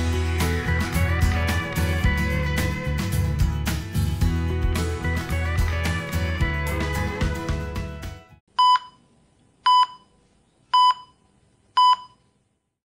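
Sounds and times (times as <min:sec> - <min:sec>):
background music: 0:00.0 - 0:08.4.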